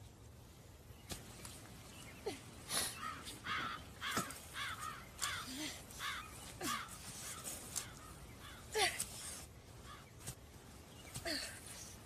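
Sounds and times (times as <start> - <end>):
bird calling harshly: 2.8 - 10.1.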